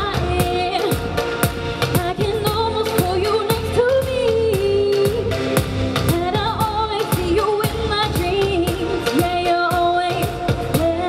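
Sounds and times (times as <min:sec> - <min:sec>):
backing music with steady beat: 0:00.0 - 0:11.0
woman singing into microphone: 0:00.0 - 0:11.0.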